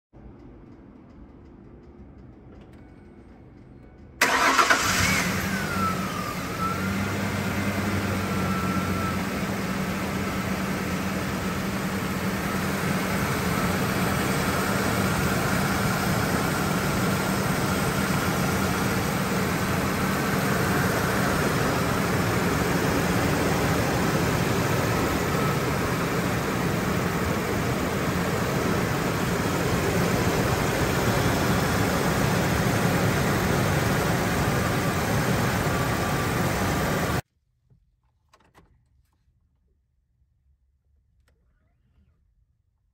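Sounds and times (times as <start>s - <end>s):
engine whine: 0.2s - 37.2s
engine starting and idling: 3.9s - 37.2s.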